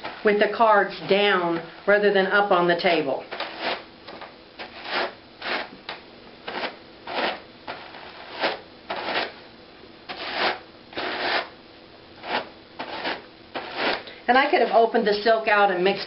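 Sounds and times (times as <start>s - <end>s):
hand cards brushing fibre: 12.2s - 14.1s.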